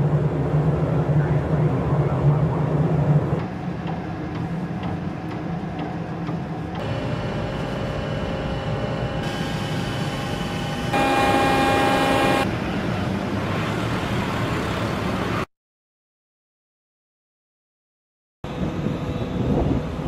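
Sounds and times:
ship engine and machinery noise: 0:00.0 - 0:15.5, 0:18.5 - 0:20.0
tonal drone: 0:06.8 - 0:12.5.

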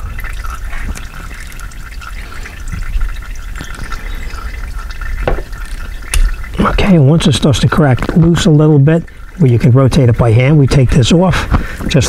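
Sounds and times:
oil pouring into bucket: 0:00.0 - 0:12.0.

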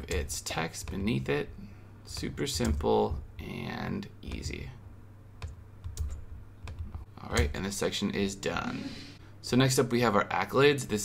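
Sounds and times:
keyboard and mouse clicks: 0:00.0 - 0:01.1, 0:02.1 - 0:02.8, 0:04.3 - 0:04.6, 0:05.4 - 0:07.6.

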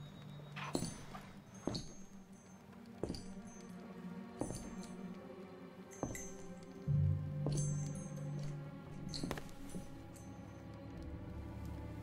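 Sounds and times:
small metallic clink: 0:00.0 - 0:05.1
faint low music drone: 0:00.0 - 0:12.0
heavy footsteps on wooden floor: 0:06.0 - 0:06.5.

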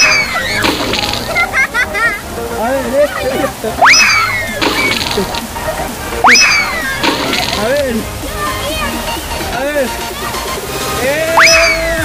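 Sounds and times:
music: 0:00.0 - 0:12.0
river rushing over rocks: 0:00.0 - 0:12.0
voices: 0:00.0 - 0:12.0.

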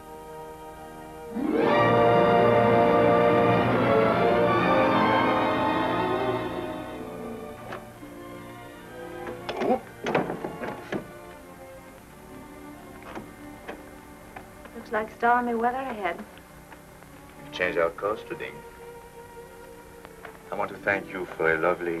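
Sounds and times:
orchestral music with strings: 0:00.0 - 0:22.0.

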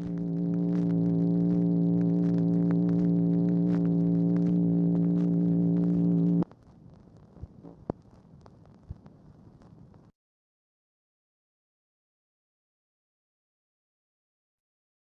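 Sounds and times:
buzzing telephone line tone: 0:00.0 - 0:06.4
recording crackle: 0:00.0 - 0:10.2.

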